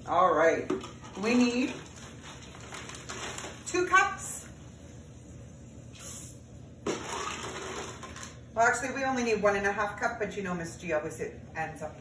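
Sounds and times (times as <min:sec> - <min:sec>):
chocolate chips rattling into pot: 0:06.9 - 0:08.4.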